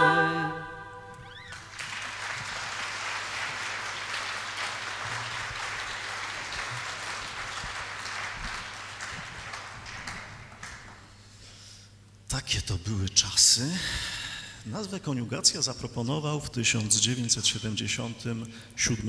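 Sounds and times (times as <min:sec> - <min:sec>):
audience applauding: 0:01.3 - 0:11.1.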